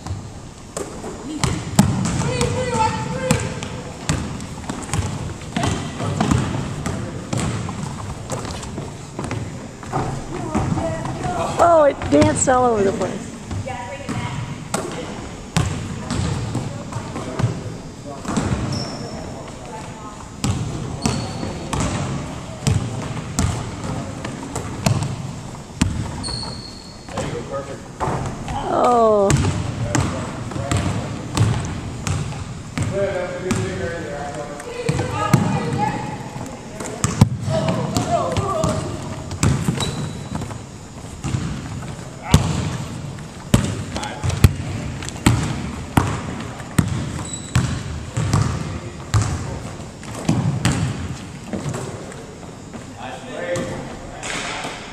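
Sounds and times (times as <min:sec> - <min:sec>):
sneaker squeaks: 0:00.0 - 0:12.9, 0:13.5 - 0:19.5, 0:20.4 - 0:28.6, 0:34.7 - 0:52.0
basketball bouncing on hardwood: 0:00.8 - 0:11.4, 0:15.6 - 0:17.6, 0:20.4 - 0:25.2, 0:25.8 - 0:26.3, 0:29.3 - 0:33.8, 0:41.2 - 0:42.8, 0:43.5 - 0:51.8.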